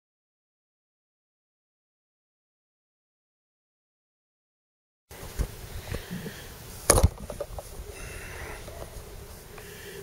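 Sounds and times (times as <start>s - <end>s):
sharp clicks and knocks: 6.9s - 7.7s.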